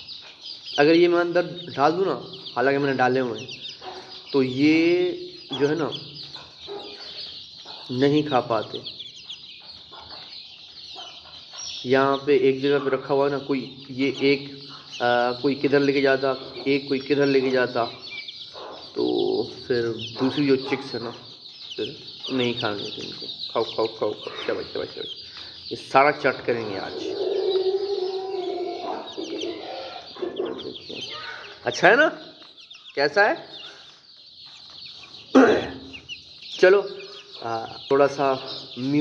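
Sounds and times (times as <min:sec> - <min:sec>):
young chickens clucking: 0:00.0 - 0:39.0
chickens pecking at tomato: 0:12.6 - 0:39.0
low drawn-out bird call: 0:26.6 - 0:31.9.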